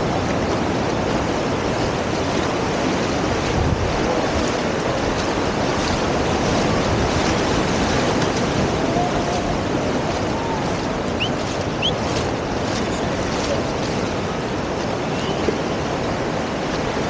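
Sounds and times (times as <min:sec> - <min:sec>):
surf washing over sandy shore: 0:00.0 - 0:17.0
wind buffeting microphone: 0:00.0 - 0:17.0.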